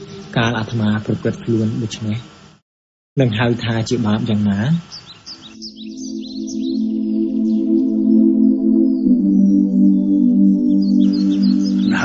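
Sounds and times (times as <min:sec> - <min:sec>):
ambient music drone: 0:00.0 - 0:02.0, 0:05.6 - 0:12.0
rapid bird chirps: 0:04.8 - 0:08.0, 0:10.7 - 0:12.0.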